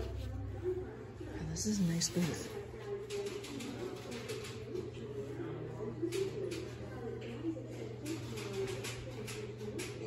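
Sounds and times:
faint background murmur: 0:00.0 - 0:10.0.

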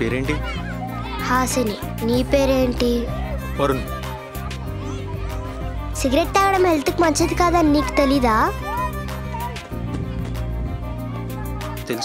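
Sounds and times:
background music with low tones: 0:00.0 - 0:12.0
girl speaking: 0:01.2 - 0:03.1, 0:06.0 - 0:08.7.

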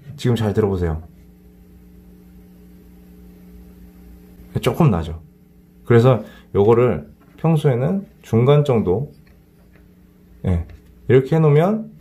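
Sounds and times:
amplifier hum and hiss: 0:00.0 - 0:12.0.

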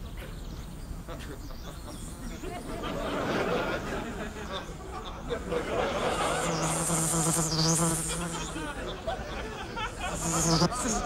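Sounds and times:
fly buzzing: 0:04.4 - 0:11.0.

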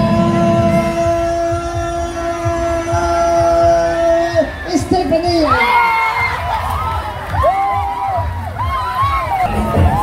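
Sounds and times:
low thumps: 0:00.0 - 0:03.8.

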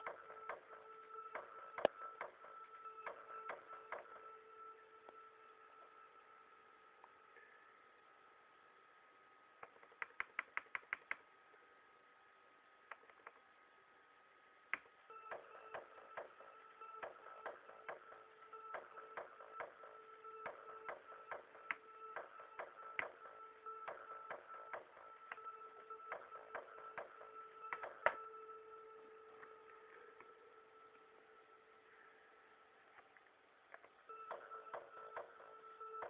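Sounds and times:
clicky electronic percussion: 0:00.0 - 0:04.2, 0:14.7 - 0:28.2, 0:34.1 - 0:36.0.

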